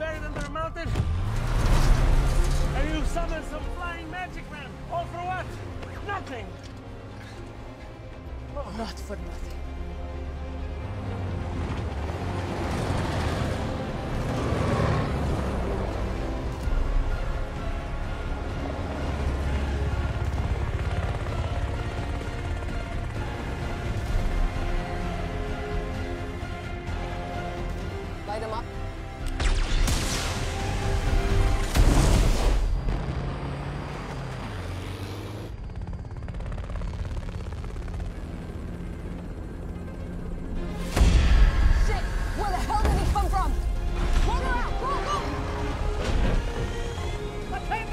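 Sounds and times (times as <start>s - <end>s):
truck engines rumbling: 0.0s - 29.3s, 32.7s - 40.8s, 42.0s - 47.9s
helicopter rotor beat: 2.4s - 29.6s, 32.8s - 41.2s, 41.8s - 47.9s.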